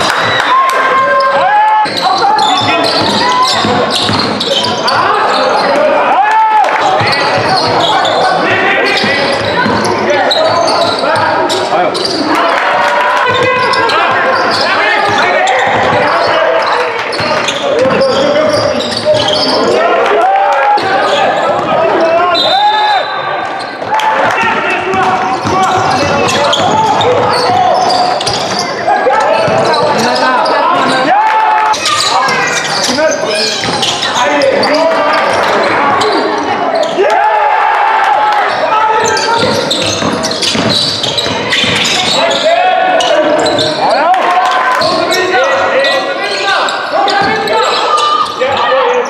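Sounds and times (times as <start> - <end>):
shouts and chatter: 0.0 - 49.0
basketball bouncing on court: 1.8 - 4.9, 8.9 - 12.1, 13.2 - 19.5, 23.8 - 28.7, 29.4 - 30.2, 33.5 - 34.1, 39.0 - 42.4.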